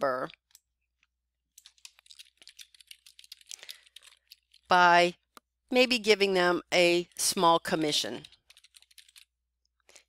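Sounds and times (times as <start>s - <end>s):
typing on computer keyboard: 1.5s - 4.7s, 8.1s - 9.3s.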